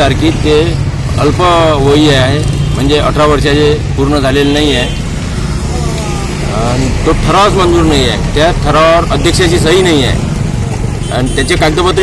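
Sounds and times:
man speaking: 5.6 - 10.3.

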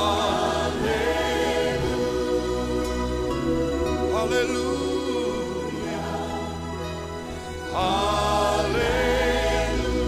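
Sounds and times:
band playing: 0.0 - 10.0
choir singing: 0.0 - 10.0.

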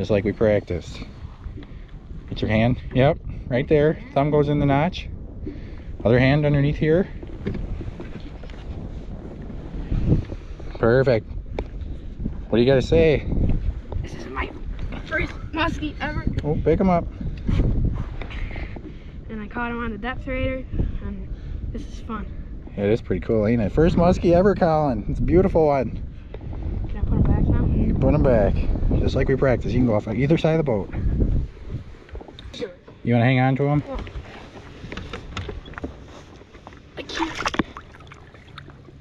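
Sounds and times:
wind noise on microphone: 0.0 - 39.0
knocks and rustles in boat: 6.5 - 10.8, 30.9 - 39.0
water splashing and lapping: 33.8 - 39.0.

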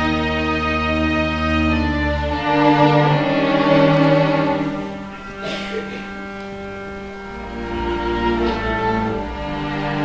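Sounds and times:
string orchestra sustained chords: 0.0 - 10.0.

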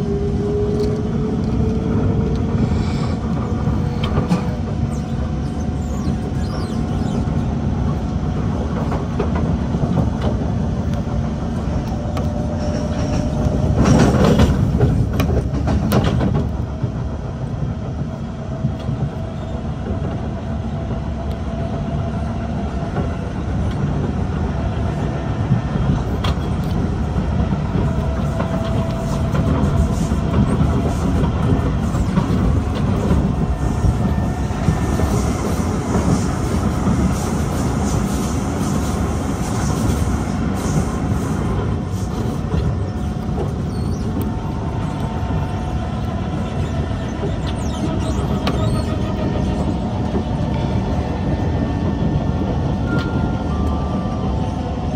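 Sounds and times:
train clattering: 0.0 - 54.9
train wheels rumbling on track: 0.0 - 54.9.

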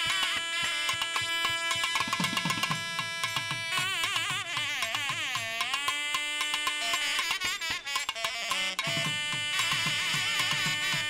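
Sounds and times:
rapid ringing strikes: 0.0 - 11.0
reed wind instrument melody: 0.0 - 11.0.

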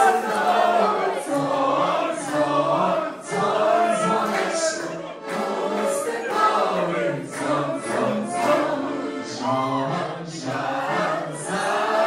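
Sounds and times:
group singing in chorus: 0.0 - 12.0.

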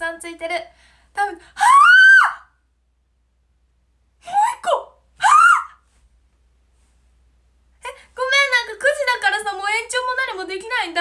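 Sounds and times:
woman squealing excitedly: 1.6 - 2.5, 5.2 - 5.8.

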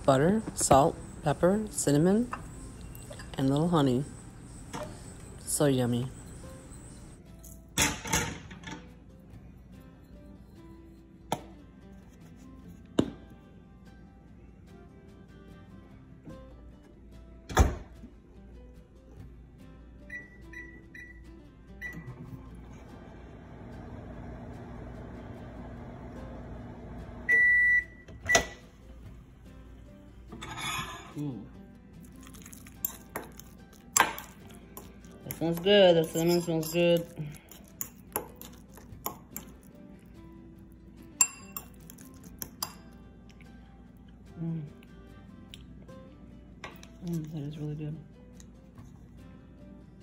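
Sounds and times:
microwave humming: 21.8 - 28.7
metal fork scraping ceramic bowl: 30.4 - 31.2, 32.3 - 39.6.

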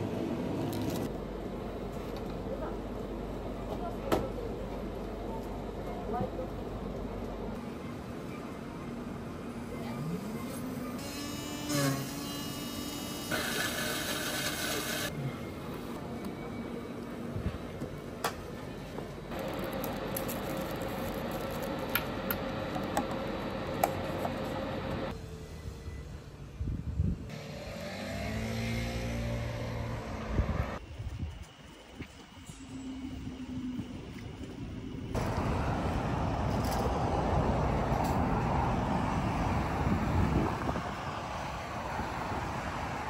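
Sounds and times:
blender motor hum and whine: 11.0 - 15.1
vehicle engine passing by: 27.3 - 30.8.

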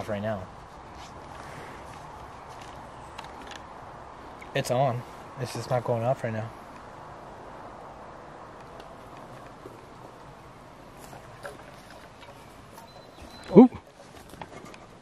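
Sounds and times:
meter beep: 12.8 - 13.6.

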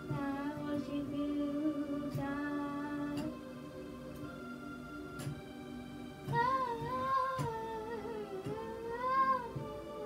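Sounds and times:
soft low thumps: 0.0 - 3.4, 6.2 - 9.8
woman singing gospel melody: 0.0 - 3.4, 6.2 - 10.0
electronic keyboard chords: 0.0 - 10.0.

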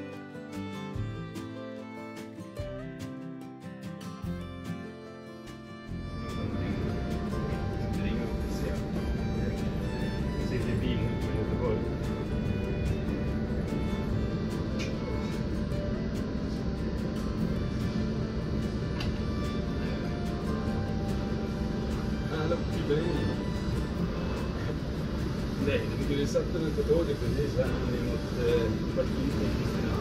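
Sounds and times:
background music: 0.0 - 30.0.

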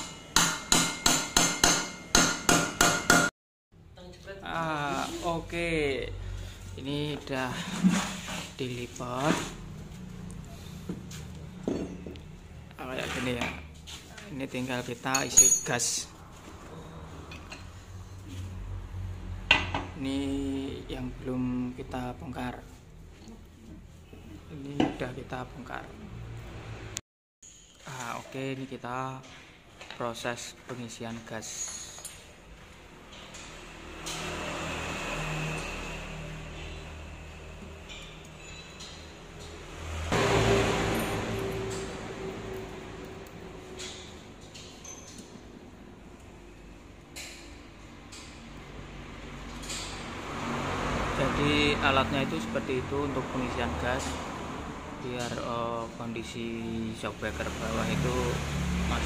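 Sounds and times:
soft metallic clinks: 43.9 - 45.4.

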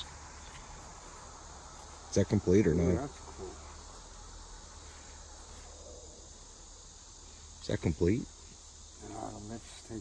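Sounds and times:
faint insect chirring: 0.0 - 10.0.

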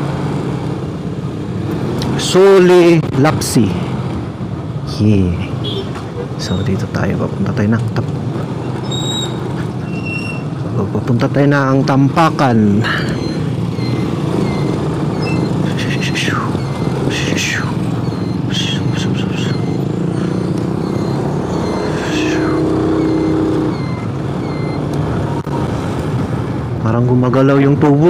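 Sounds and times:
road and wind noise: 0.0 - 28.0
motorcycle engine running: 12.4 - 26.4.

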